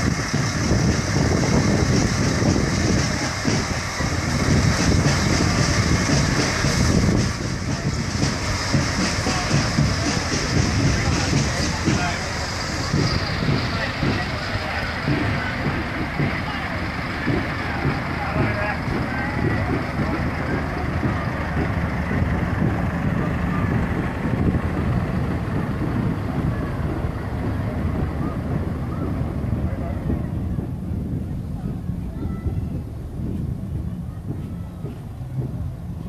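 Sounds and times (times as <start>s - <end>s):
high hiss: 0.0s - 32.0s
diesel engines rumbling: 0.0s - 36.0s
spectators chatting: 0.0s - 36.0s.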